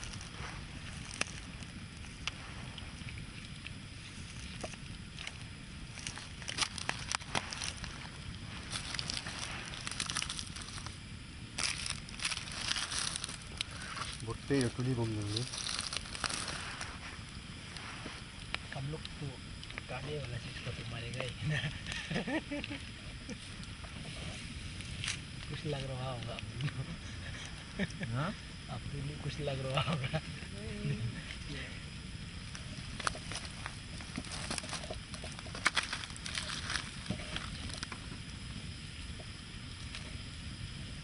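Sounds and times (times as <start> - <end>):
wood fire crackling and popping: 0.0 - 41.0.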